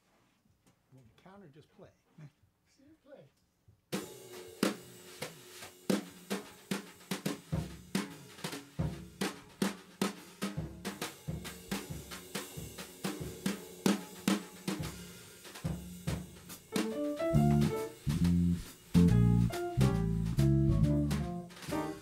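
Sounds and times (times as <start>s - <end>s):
crisp drum strokes: 4.0s - 22.0s
small jazz band playing: 4.3s - 22.0s.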